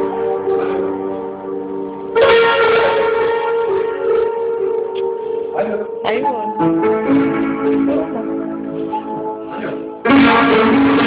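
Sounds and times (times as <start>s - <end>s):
instrumental music with ringing chords: 0.0s - 11.0s.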